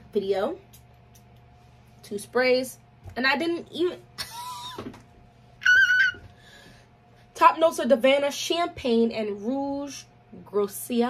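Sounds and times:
woman's high-pitched ooh: 5.6 - 6.3.

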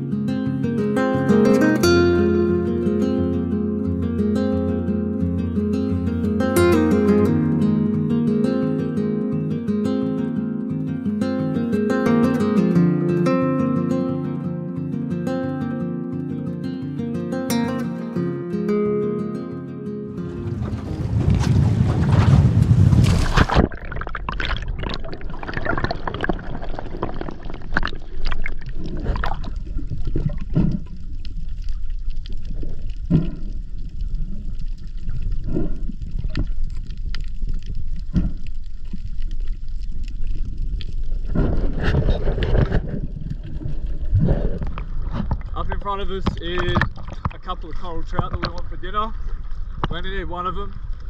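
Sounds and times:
wind: 20.1 - 23.7, 37.9 - 51.0
water rushing beside boat: 20.2 - 30.9
muffled underwater water movement: 20.2 - 51.0.

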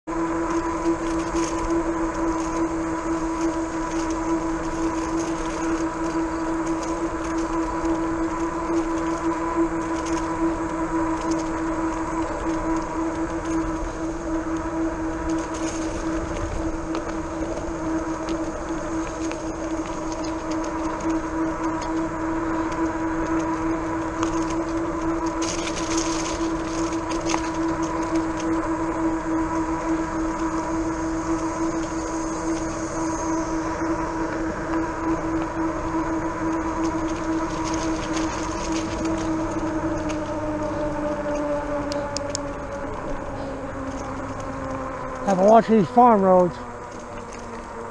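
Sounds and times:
electric hub motor whine: 0.0 - 47.9
faint crackles: 0.1 - 47.9
tyres rolling on asphalt: 0.1 - 47.9.

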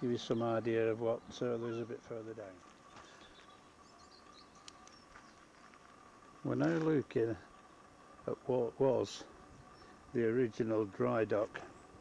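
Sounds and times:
faint steady hum: 0.0 - 12.0
faint high bird chirps: 2.7 - 5.8.

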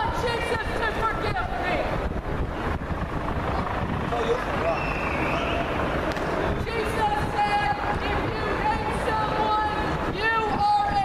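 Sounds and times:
traffic rumble: 0.0 - 11.0
wind on microphone: 0.0 - 11.0.

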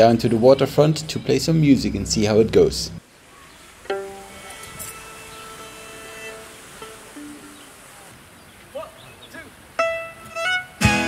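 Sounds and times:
plucked string note ringing: 3.9 - 7.6
violin playing: 3.9 - 7.8, 9.8 - 11.0
acoustic guitar playing: 3.9 - 8.0, 9.8 - 11.0.

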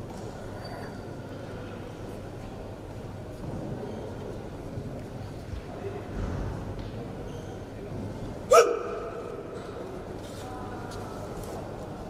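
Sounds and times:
man shouting in large hall: 8.5 - 9.4.

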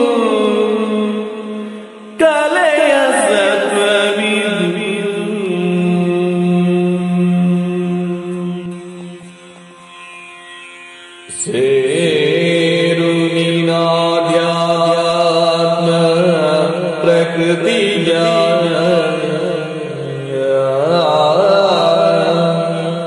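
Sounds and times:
person singing: 0.0 - 9.5, 11.3 - 23.0.

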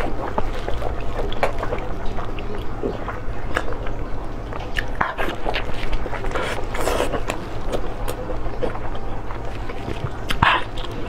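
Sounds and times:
close-up chewing: 0.0 - 11.0.

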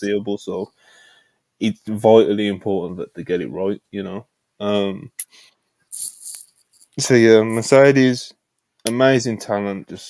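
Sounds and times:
rattling rustle: 5.9 - 7.0.

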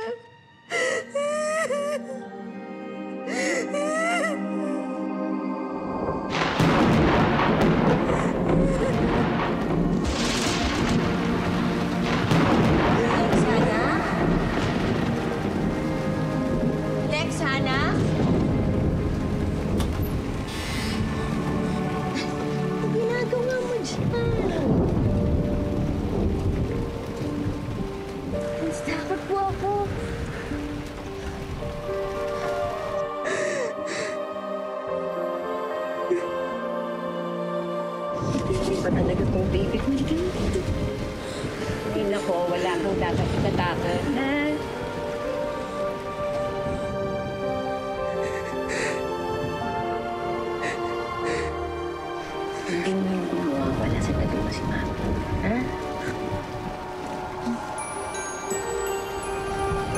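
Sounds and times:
music of long held notes: 0.0 - 59.9
rain hissing: 5.9 - 35.3, 38.1 - 59.9.

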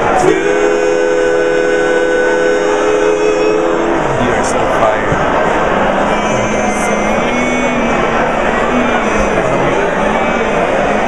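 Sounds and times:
barbershop quartet singing a cappella: 0.0 - 11.0
crowd chatter in echoing lobby: 0.0 - 11.0.

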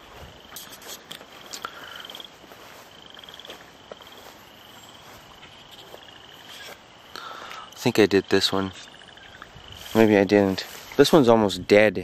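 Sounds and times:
frogs trilling: 0.0 - 12.0.

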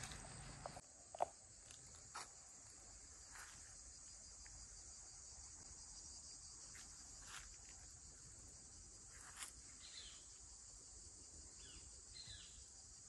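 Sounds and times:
high-pitched insect chorus: 0.0 - 13.0.

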